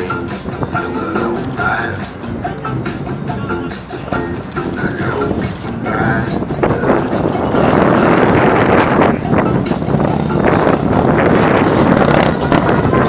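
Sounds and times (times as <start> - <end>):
motorcycle engine at low speed: 6.8 - 13.0.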